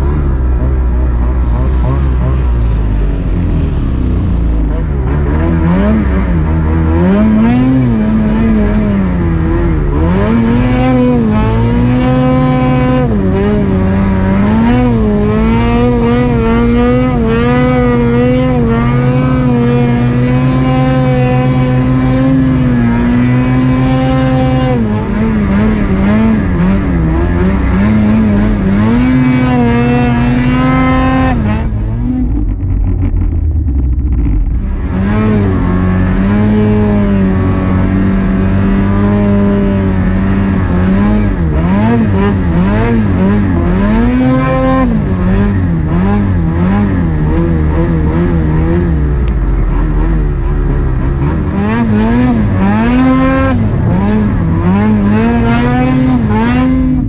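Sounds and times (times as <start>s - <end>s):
snowmobile engine revving: 0.0s - 57.0s.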